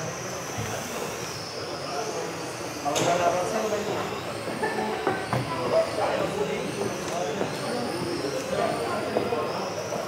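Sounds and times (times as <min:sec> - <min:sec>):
model car motors whining: 0:00.0 - 0:10.0.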